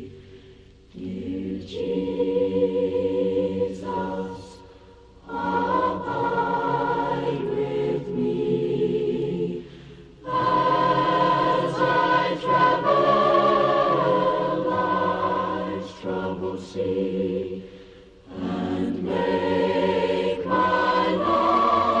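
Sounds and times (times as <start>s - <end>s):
chorus singing a hymn: 0.0s - 22.0s.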